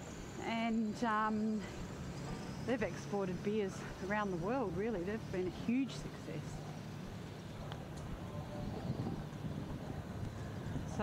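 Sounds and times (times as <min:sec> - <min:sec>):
steady low rumble: 0:00.0 - 0:11.0
wind on microphone: 0:07.1 - 0:11.0.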